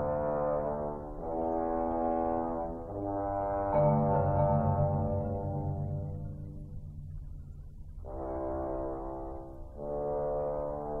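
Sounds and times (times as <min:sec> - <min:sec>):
french horn sustained notes: 0:00.0 - 0:11.0
marimba low pulsing notes: 0:03.6 - 0:08.6.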